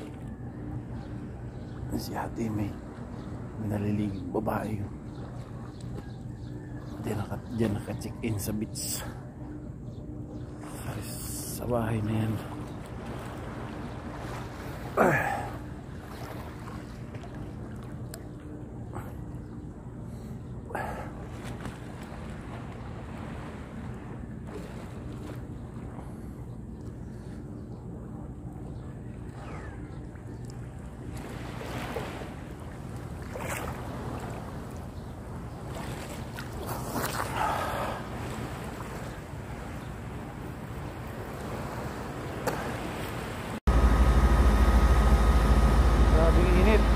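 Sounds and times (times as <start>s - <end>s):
steady low drone: 0.0s - 31.4s, 43.7s - 46.9s
steady low hum: 0.0s - 36.7s, 37.3s - 46.9s
sea water lapping: 0.0s - 46.9s.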